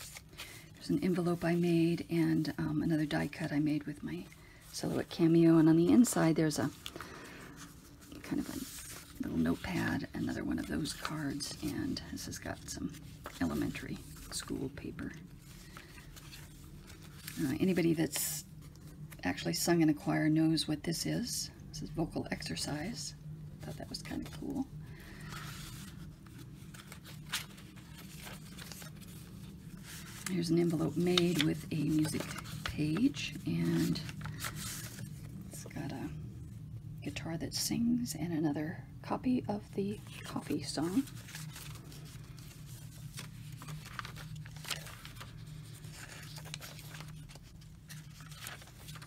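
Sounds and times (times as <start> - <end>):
paper pages rustling: 0.0 - 19.2, 23.6 - 35.7, 39.9 - 49.0.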